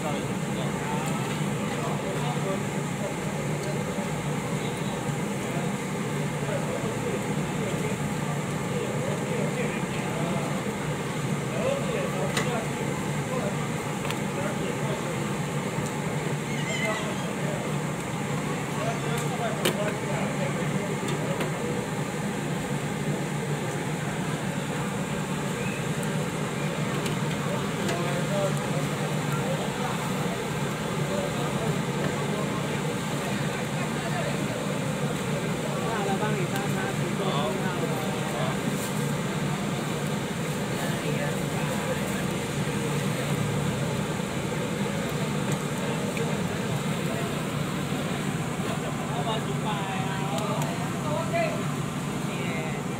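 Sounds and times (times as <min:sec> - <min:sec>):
background hum and hiss: 0:00.0 - 0:52.9.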